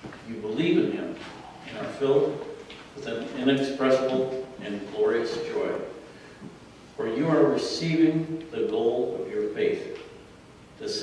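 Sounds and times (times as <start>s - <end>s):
man reading aloud: 0.0s - 6.1s, 7.0s - 10.2s, 10.8s - 11.0s.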